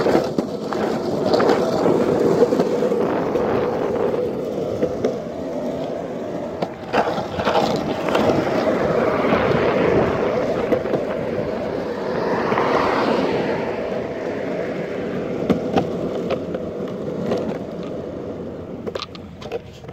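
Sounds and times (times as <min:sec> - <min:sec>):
sharp skateboard clicks: 0:00.0 - 0:19.9
skateboard wheels rolling on asphalt: 0:00.0 - 0:19.9.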